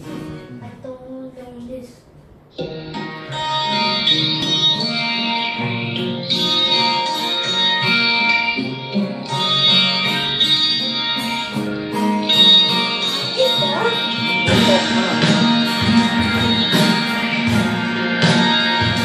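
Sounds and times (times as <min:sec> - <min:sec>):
acoustic guitars playing: 0:00.0 - 0:19.0
backing track: 0:02.5 - 0:19.0.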